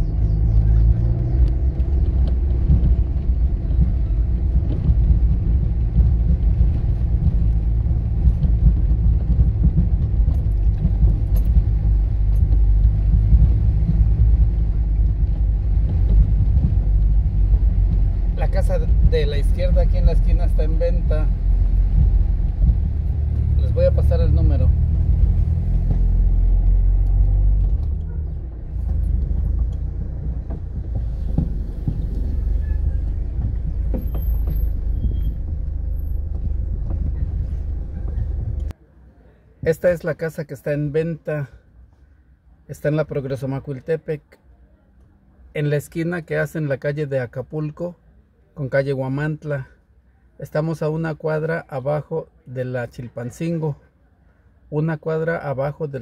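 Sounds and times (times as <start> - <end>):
car rumbling over cobblestones: 0.0 - 47.8.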